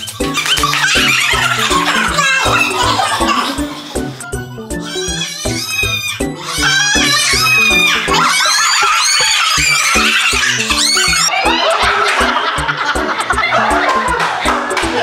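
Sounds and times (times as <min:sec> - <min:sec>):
group of people laughing: 0:00.0 - 0:04.6, 0:06.5 - 0:15.0
background music with steady beat: 0:00.0 - 0:08.4, 0:09.3 - 0:15.0.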